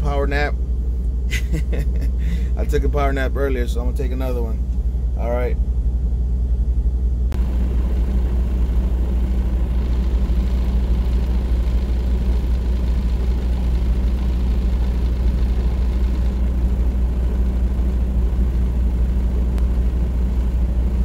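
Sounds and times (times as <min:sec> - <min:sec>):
diesel truck engine idling: 0:00.0 - 0:21.0.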